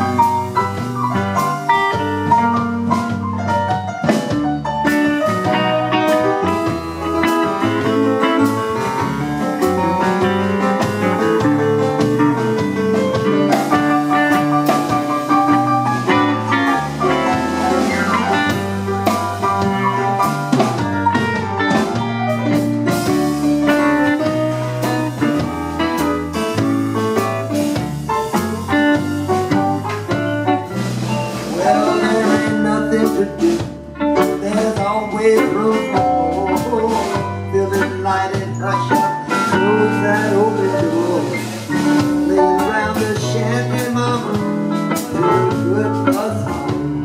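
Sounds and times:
bass line: 0:00.0 - 0:47.0
keyboard playing bluesy groove: 0:00.0 - 0:47.0
steady drum beat: 0:00.0 - 0:47.0.

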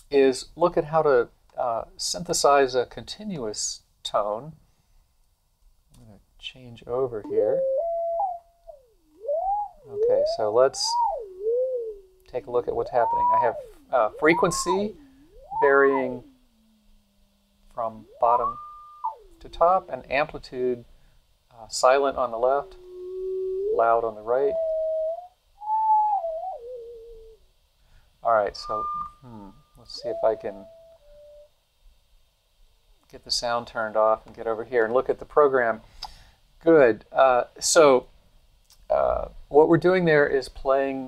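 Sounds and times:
gliding sine-wave tone: 0:07.2 - 0:20.8, 0:21.6 - 0:27.4, 0:28.2 - 0:31.5.

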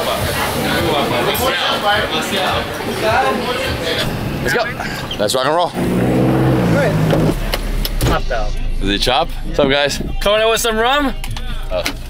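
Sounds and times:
car engine humming: 0:00.0 - 0:12.0
low rumble of moving car: 0:00.0 - 0:12.0.

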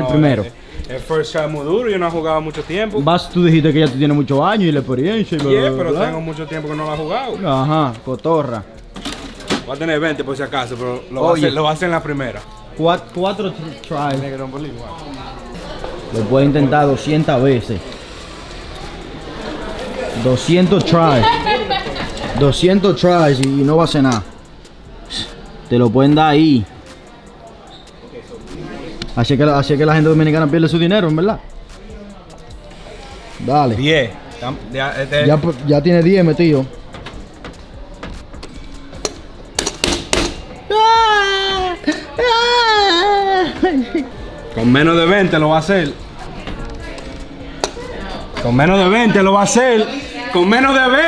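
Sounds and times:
busy room hubbub: 0:00.0 - 0:51.0
faint distant voices: 0:00.0 - 0:51.0
high wordless vocal cries: 0:40.7 - 0:44.1.

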